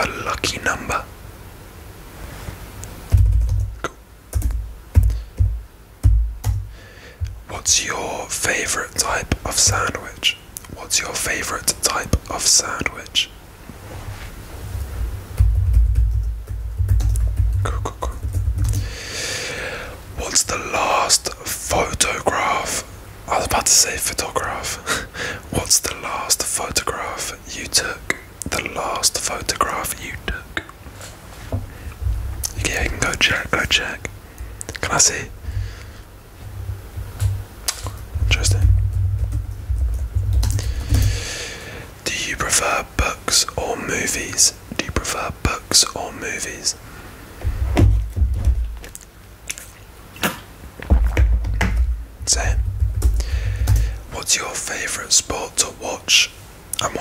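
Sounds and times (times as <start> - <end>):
man whispering: 0.0 - 1.2, 7.2 - 13.4, 17.6 - 19.0, 19.8 - 30.8, 31.7 - 36.0, 37.6 - 39.3, 40.3 - 46.8, 52.2 - 57.0.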